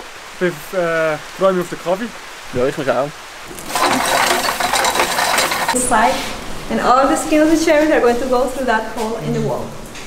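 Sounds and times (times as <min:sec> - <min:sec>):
hand-cranked machine rattling: 0:03.5 - 0:05.9.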